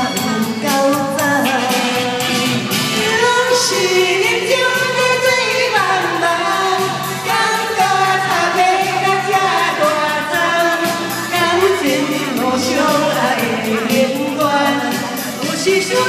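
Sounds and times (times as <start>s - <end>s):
pop song over loudspeakers: 0.0s - 16.0s.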